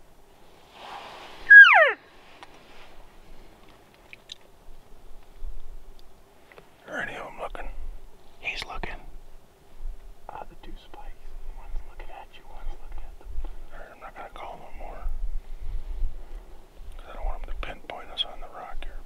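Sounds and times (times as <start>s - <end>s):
man whispering: 6.8s - 7.8s, 8.4s - 9.2s, 10.3s - 15.2s, 17.0s - 19.0s.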